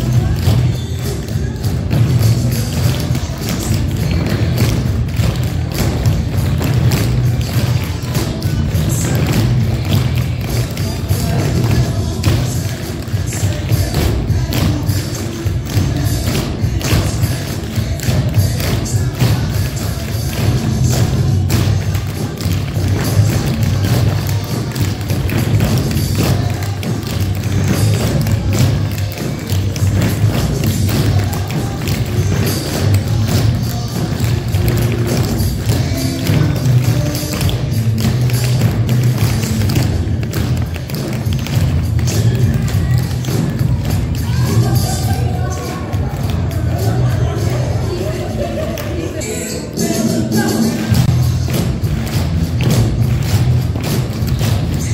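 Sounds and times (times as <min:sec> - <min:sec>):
recorded music with bass line: 0:00.0 - 0:54.9.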